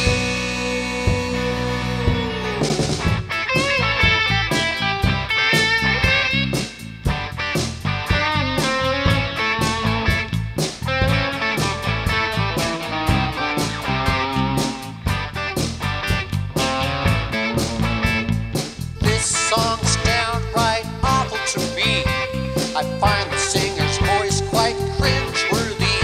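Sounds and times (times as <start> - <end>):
electric guitar melodic lines: 0.0 - 26.0
rock instrumental music: 0.0 - 26.0.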